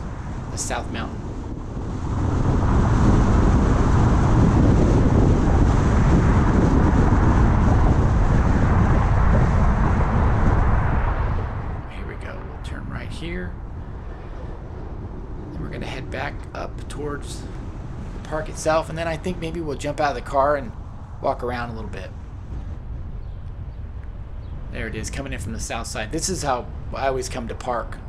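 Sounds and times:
car road and wind noise: 0:00.0 - 0:28.0.

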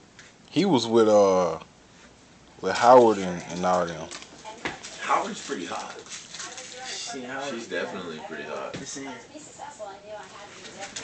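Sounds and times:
men talking quietly: 0:02.6 - 0:11.0.

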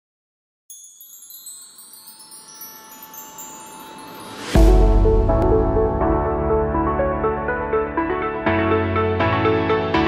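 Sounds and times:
wind chimes ringing: 0:00.7 - 0:05.1.

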